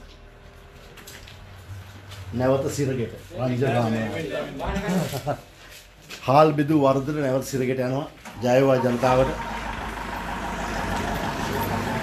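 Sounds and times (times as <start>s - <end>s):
vehicle engine running: 8.8s - 12.0s.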